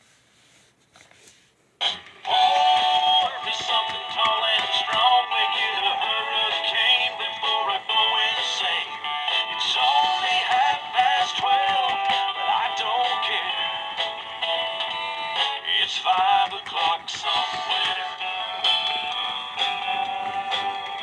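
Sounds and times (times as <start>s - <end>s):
toy speaker playing sung tune: 2.0s - 21.0s.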